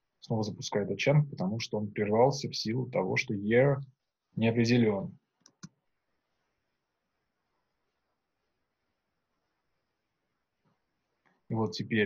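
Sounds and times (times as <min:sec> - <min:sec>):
computer mouse clicks: 0:05.4 - 0:05.8.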